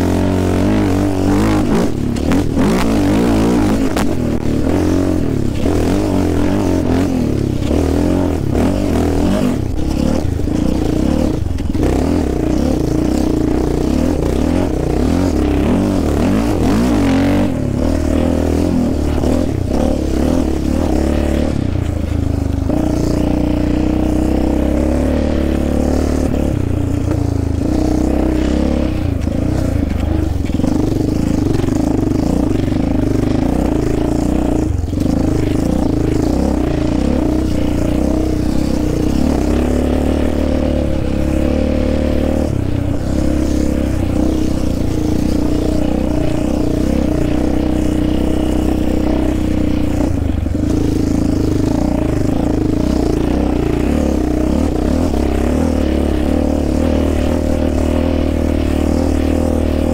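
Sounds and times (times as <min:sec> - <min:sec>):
atv engine revving: 0:00.0 - 0:59.9.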